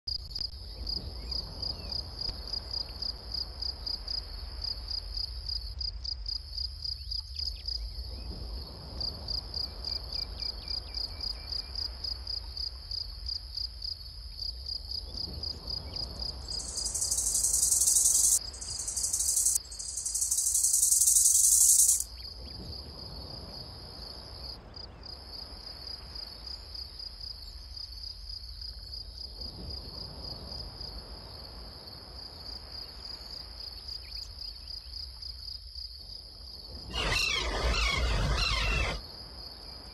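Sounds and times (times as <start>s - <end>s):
crickets chirping: 0.5s - 39.9s
loud high-pitched insect buzz: 16.5s - 22.1s, 37.0s - 39.0s.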